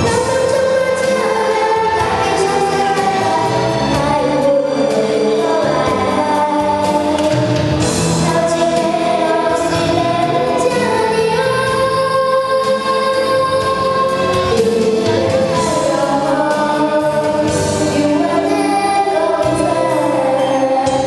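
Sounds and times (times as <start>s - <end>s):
girl singing into a microphone: 0.0s - 21.0s
karaoke backing track: 0.0s - 21.0s.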